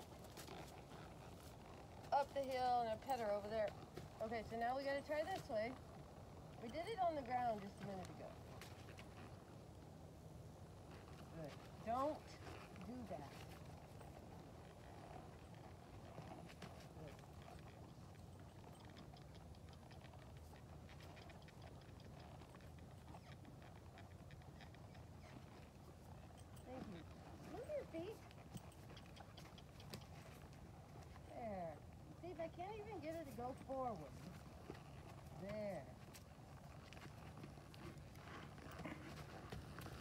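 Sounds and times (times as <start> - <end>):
low background noise: 0.0 - 40.0
horse hoof steps on dirt: 32.4 - 40.0.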